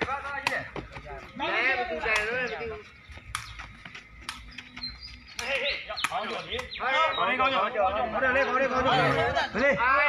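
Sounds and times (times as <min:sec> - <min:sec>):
ball kicked with sharp knocks: 0:00.0 - 0:01.2, 0:05.3 - 0:06.8.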